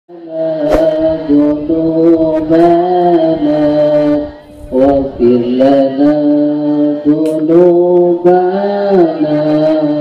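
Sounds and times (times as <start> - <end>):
man chanting devotional song: 0.1 - 10.0.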